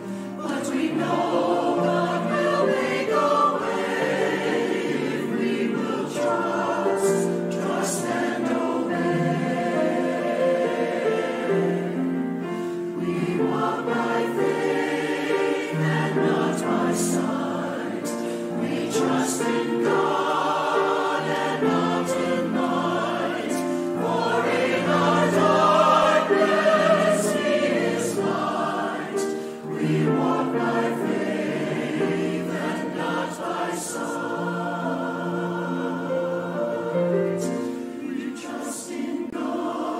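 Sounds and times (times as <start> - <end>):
mixed choir singing: 0.0 - 39.9
piano accompaniment: 0.0 - 39.9.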